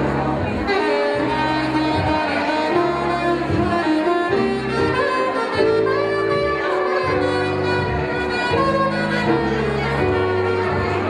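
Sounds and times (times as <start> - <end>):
low bass line: 0.0 - 11.0
saxophone melody: 0.0 - 11.0.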